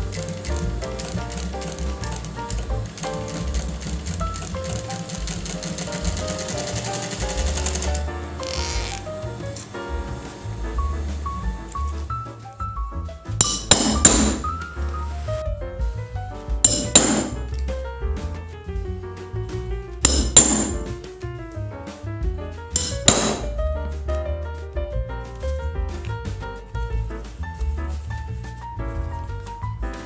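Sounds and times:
sewing machine stitching: 0.0s - 9.7s
background music: 0.0s - 30.0s
hammer striking metal punch: 13.4s - 14.6s, 16.6s - 17.4s, 20.0s - 21.0s, 22.8s - 23.6s.

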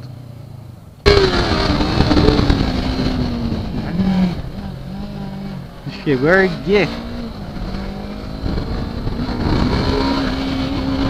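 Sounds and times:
motorcycle engine revving: 0.0s - 11.0s
wind rush: 1.0s - 11.0s.

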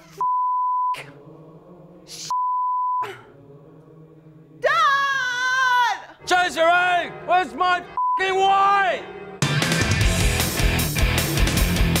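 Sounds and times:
censor bleep: 0.1s - 1.0s, 2.3s - 3.0s, 8.0s - 8.2s.

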